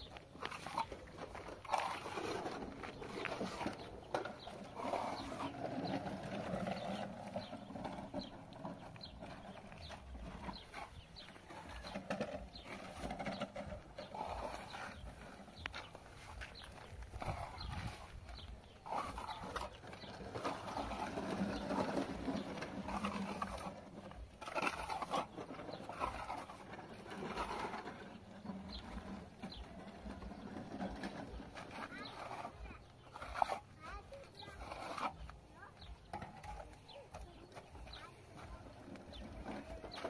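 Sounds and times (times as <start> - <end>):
trowel scraping wet plaster: 0.0 - 40.0.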